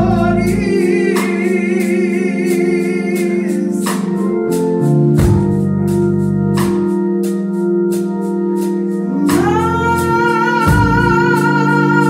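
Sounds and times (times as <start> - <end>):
gospel vocal group singing: 0.0 - 4.5, 9.1 - 12.0
organ chords: 0.0 - 12.0.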